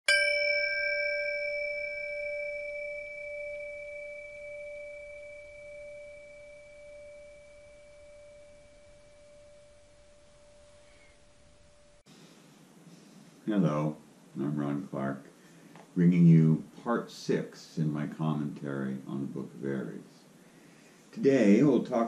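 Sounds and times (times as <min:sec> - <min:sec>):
struck bell tone ringing: 0:00.1 - 0:12.0.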